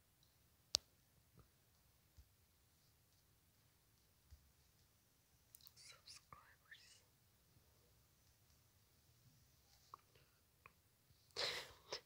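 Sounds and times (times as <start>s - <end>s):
faint whispered breathy sounds: 5.5s - 8.2s, 9.4s - 12.0s.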